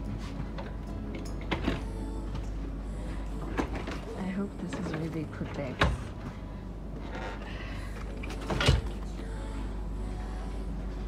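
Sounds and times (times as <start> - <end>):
low steady hum in train: 0.0 - 11.0.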